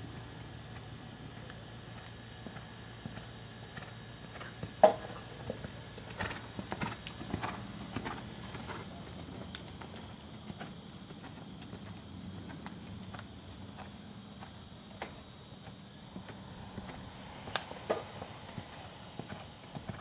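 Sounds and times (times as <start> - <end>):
horse hoofbeats on sand: 1.9 - 17.0.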